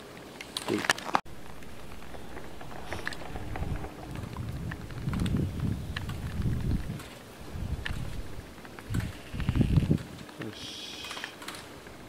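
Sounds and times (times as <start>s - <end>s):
wind buffeting microphone: 1.3s - 10.3s
sharp clicks: 7.8s - 12.0s.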